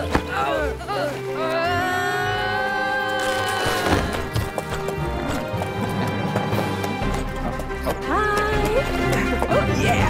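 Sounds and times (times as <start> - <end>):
film score music: 0.0 - 10.0
hooves clip-clopping: 4.0 - 10.0.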